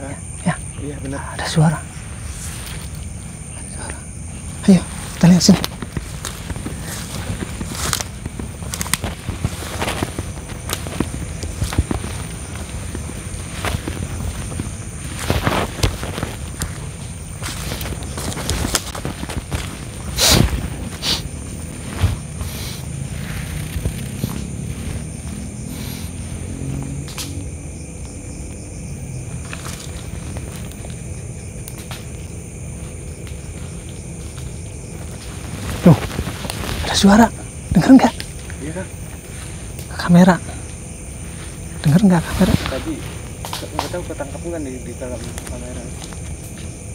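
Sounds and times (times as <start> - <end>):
steady low rumble: 0.0 - 46.9
footsteps in undergrowth: 1.9 - 39.9, 40.6 - 46.9.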